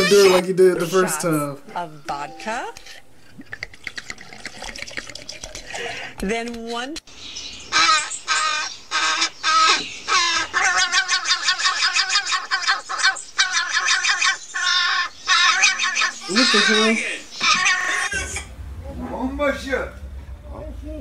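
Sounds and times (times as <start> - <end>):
crow squawking harshly: 0.0 - 0.5, 7.7 - 18.5.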